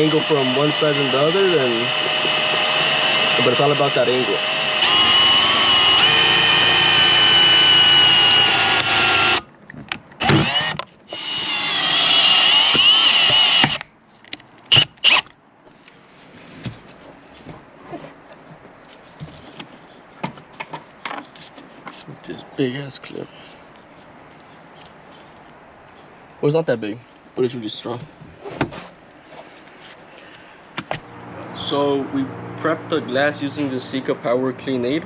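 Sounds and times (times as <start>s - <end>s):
power tool blips: 0.0s - 9.4s
power tool whining: 0.0s - 9.5s, 10.2s - 13.8s, 14.7s - 15.3s.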